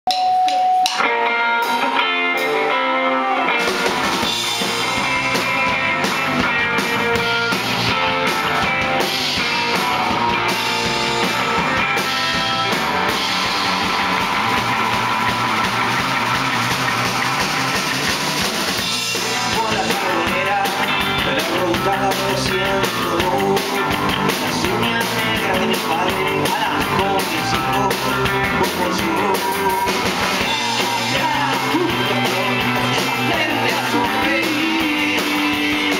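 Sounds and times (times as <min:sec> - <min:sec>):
rock band playing: 0:00.1 - 0:35.9
electric guitar: 0:00.2 - 0:35.9.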